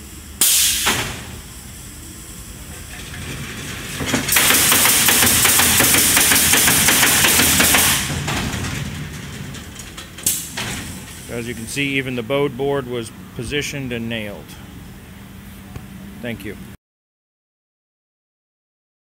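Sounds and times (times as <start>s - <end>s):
compressed-air hiss: 0.0s - 2.8s, 4.3s - 8.2s
pneumatic nailers firing nails: 0.4s - 1.4s, 3.2s - 11.3s.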